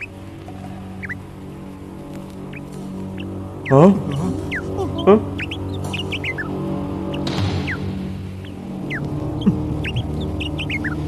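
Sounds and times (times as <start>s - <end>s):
low musical drone: 0.0s - 11.0s
small birds chirping: 0.0s - 11.0s.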